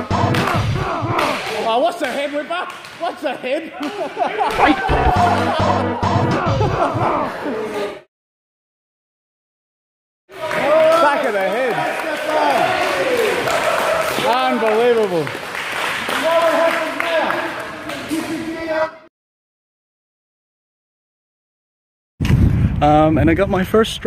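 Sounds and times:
crowd shouting and cheering: 0:00.0 - 0:01.9, 0:03.8 - 0:08.1, 0:10.3 - 0:15.3
sharp slaps: 0:00.3 - 0:03.0
hands clapping: 0:01.2 - 0:03.1, 0:03.8 - 0:05.6, 0:10.3 - 0:18.2
electronic music with heavy beat: 0:04.6 - 0:07.0.

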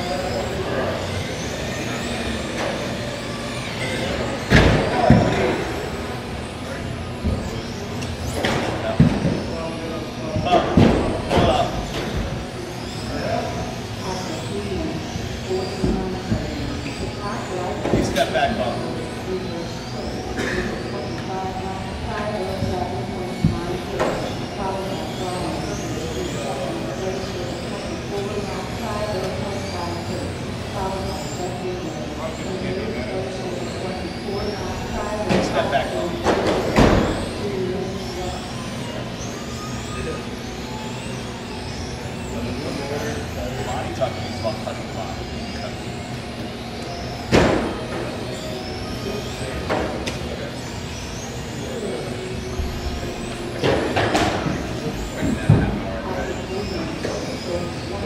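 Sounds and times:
electric rc car motors whining: 0:00.0 - 0:58.0
hall chatter: 0:00.0 - 0:58.0.

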